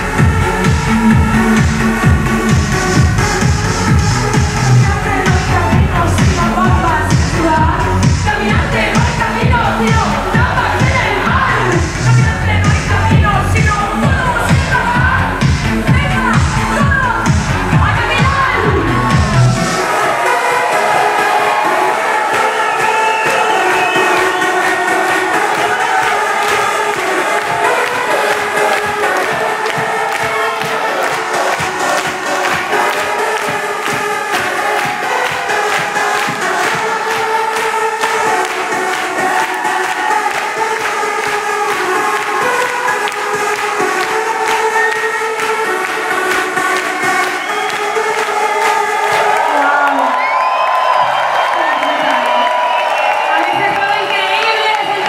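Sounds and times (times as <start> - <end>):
techno-pop song through pa: 0.0 - 55.0
audience cheering: 18.4 - 40.9, 46.7 - 55.0.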